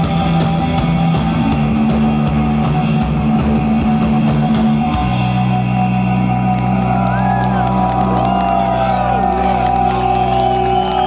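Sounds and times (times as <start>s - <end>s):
crowd cheering and whooping: 5.9s - 11.0s.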